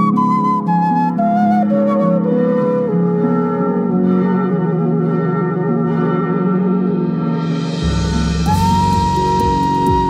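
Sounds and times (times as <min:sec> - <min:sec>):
flute melody with vibrato: 0:00.0 - 0:10.0
sustained low accompaniment: 0:02.2 - 0:10.0.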